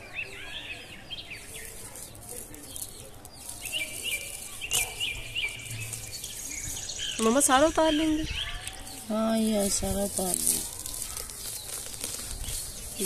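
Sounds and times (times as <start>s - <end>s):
rustle of leaves: 0.0s - 13.0s
small birds chirping: 0.0s - 13.0s.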